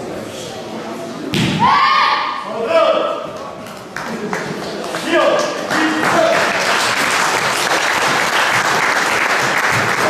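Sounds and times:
martial arts shouts: 1.5s - 3.1s.

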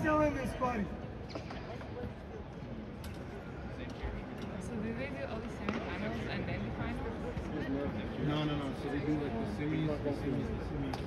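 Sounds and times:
indistinct background chatter: 0.0s - 11.0s.

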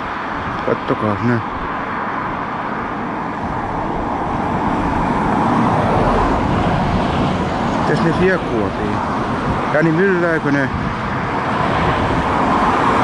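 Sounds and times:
road traffic rushing: 0.0s - 13.0s
vehicle passing: 0.0s - 13.0s.

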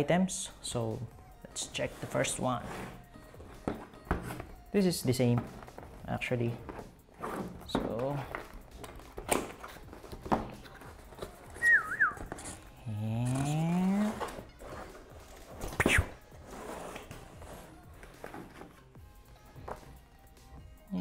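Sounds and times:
wavering whistle-like tone: 11.6s - 12.3s.

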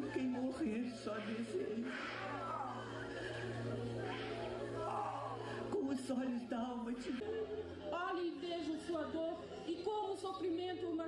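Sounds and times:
sustained musical tones: 0.0s - 8.0s.

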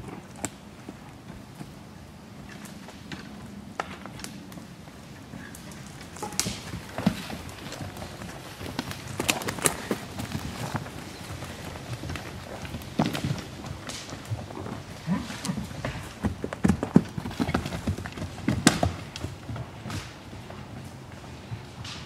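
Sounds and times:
horse hooves thudding on ground: 0.0s - 22.0s.

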